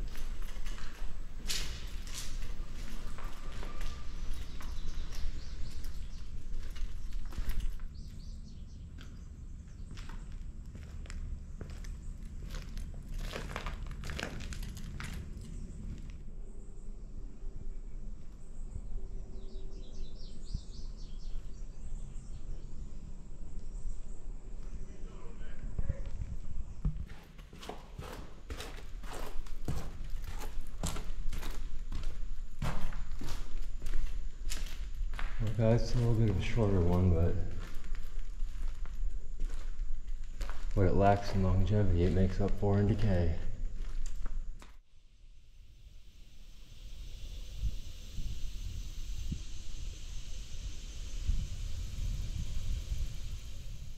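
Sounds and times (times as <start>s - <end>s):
footsteps crunching over debris: 0.0s - 8.3s, 8.9s - 16.2s, 27.0s - 44.8s
birds chirping: 0.0s - 13.1s, 15.2s - 27.1s.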